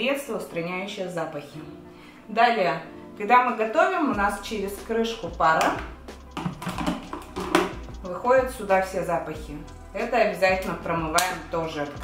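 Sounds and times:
background music: 0:00.0 - 0:12.0
lid clicks and taps: 0:05.6 - 0:07.8.

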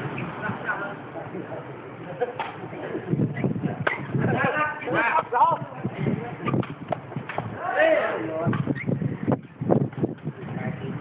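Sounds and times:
ball kicked with hollow knocks: 0:03.7 - 0:04.2, 0:06.4 - 0:07.6, 0:08.4 - 0:10.5.

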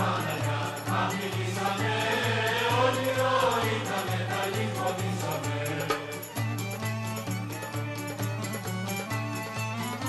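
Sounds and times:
choir singing: 0:00.0 - 0:06.4.

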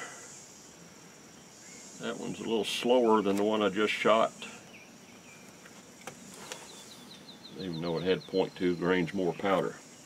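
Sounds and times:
insects buzzing: 0:00.0 - 0:10.0
bird chirping: 0:01.3 - 0:10.0.

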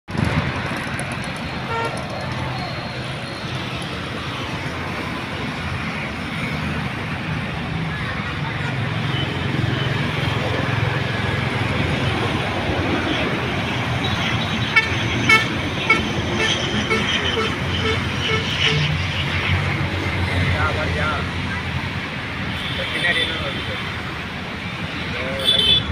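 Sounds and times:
road traffic noise: 0:00.1 - 0:25.9
vehicle horn toots: 0:01.7 - 0:02.1, 0:14.2 - 0:18.9, 0:25.4 - 0:25.9.

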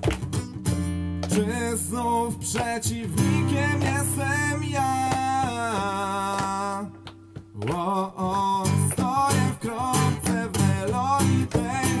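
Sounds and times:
acoustic guitar strums: 0:00.0 - 0:12.0
person singing: 0:01.3 - 0:07.0, 0:07.6 - 0:12.0.

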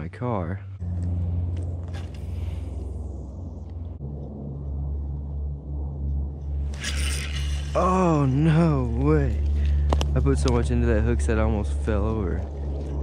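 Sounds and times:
low steady rumble: 0:00.0 - 0:13.0.

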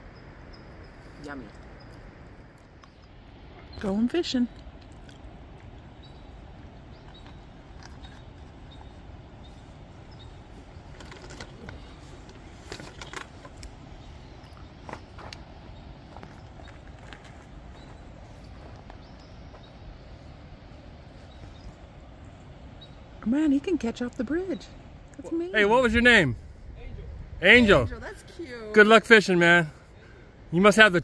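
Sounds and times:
low rushing background noise: 0:00.0 - 0:31.0.

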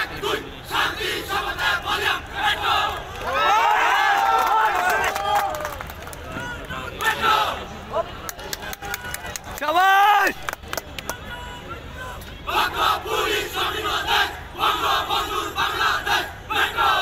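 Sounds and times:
loud drawn-out shout: 0:00.2 - 0:07.7
chorus of voices shouting in unison: 0:12.5 - 0:17.0.

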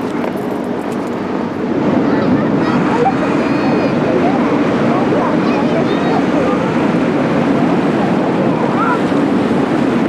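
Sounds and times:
ship diesel engines droning: 0:00.0 - 0:10.0
water rushing past hull: 0:00.0 - 0:10.0
wind buffeting microphone: 0:00.0 - 0:10.0.

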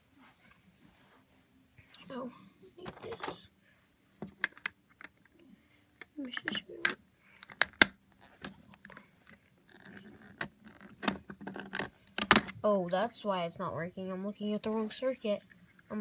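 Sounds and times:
plastic parts clicking: 0:04.2 - 0:05.4, 0:06.0 - 0:12.6.

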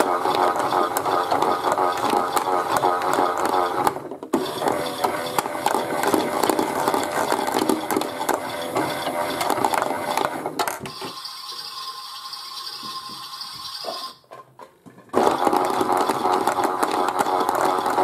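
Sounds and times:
plastic drum rattling: 0:00.0 - 0:11.0, 0:14.4 - 0:18.0
toy washing machine running: 0:00.0 - 0:14.2, 0:15.1 - 0:18.0.

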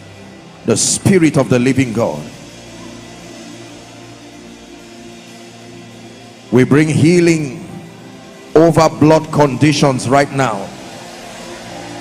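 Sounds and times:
soft music of sustained chords: 0:00.0 - 0:12.0.

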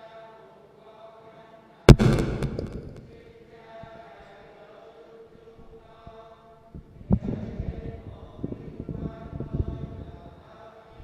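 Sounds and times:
group chanting a prayer: 0:00.0 - 0:01.9, 0:03.0 - 0:11.0
low knocks and rumbles: 0:01.9 - 0:03.2
sharp thump: 0:01.9 - 0:03.2.

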